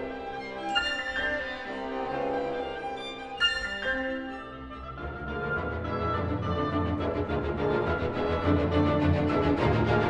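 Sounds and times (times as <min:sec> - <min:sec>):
orchestra with bowed strings: 0:00.0 - 0:10.0.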